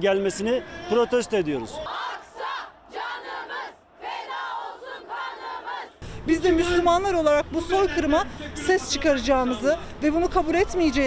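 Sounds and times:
women chanting in unison: 0:01.9 - 0:06.0.

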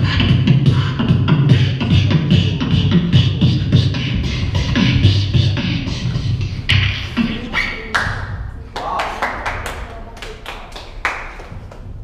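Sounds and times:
crowd voices: 0:00.7 - 0:11.0
audience clapping: 0:07.9 - 0:08.2, 0:08.8 - 0:12.0.

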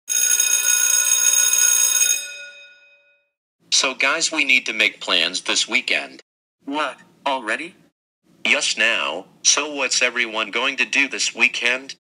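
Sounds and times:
electric school bell ringing: 0:00.1 - 0:03.3.

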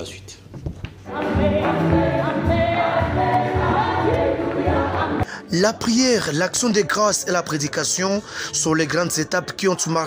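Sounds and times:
choir singing gospel song: 0:01.1 - 0:08.0.

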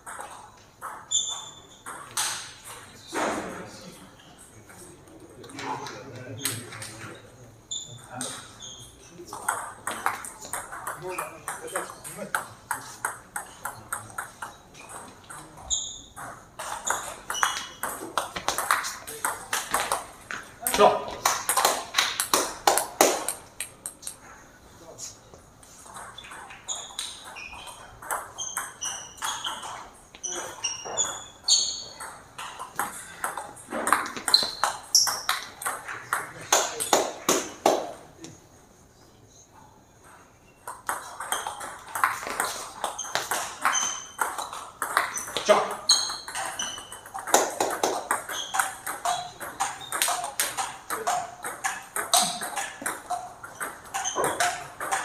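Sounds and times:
ping pong ball on paddles: 0:00.0 - 0:03.3, 0:07.7 - 0:24.3, 0:25.9 - 0:38.0, 0:40.1 - 0:55.0
ball bouncing on table: 0:09.3 - 0:24.2, 0:32.0 - 0:38.0, 0:40.6 - 0:55.0.

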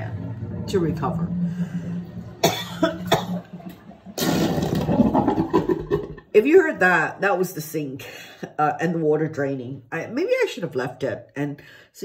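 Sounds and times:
sink water draining gurgling: 0:00.0 - 0:07.7.

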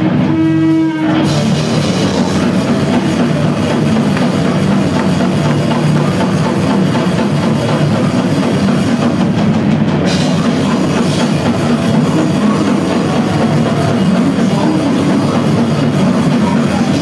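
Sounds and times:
distorted guitars: 0:00.0 - 0:17.0
fast drumming: 0:01.1 - 0:17.0.

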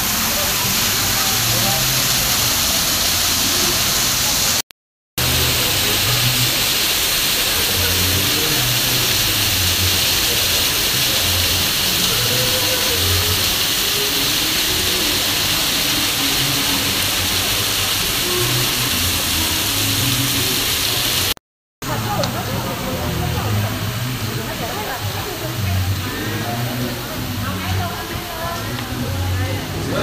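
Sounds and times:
fountains spraying water: 0:00.0 - 0:04.6, 0:05.2 - 0:30.0.

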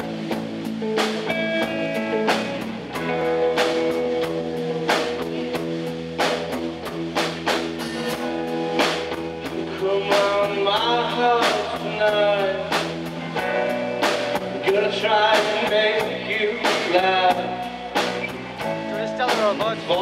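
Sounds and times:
drum hits: 0:00.0 - 0:20.0
live rock band playing: 0:00.0 - 0:20.0
man singing: 0:09.6 - 0:12.9, 0:14.5 - 0:17.8, 0:18.9 - 0:20.0.

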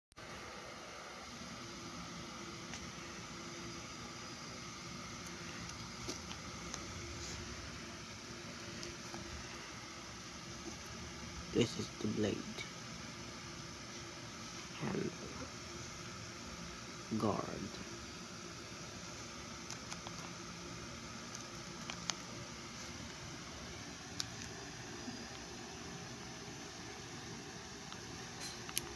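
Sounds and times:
faint hum: 0:00.2 - 0:28.9
room noise hiss: 0:00.2 - 0:28.9.

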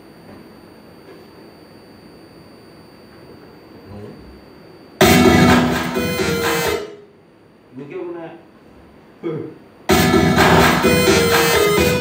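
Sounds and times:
amplified electronic music: 0:05.0 - 0:07.0, 0:09.9 - 0:12.0.

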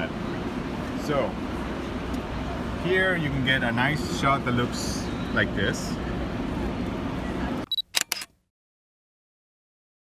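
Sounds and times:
camera beep: 0:07.6 - 0:08.3
camera shutter clicks: 0:07.7 - 0:08.4.

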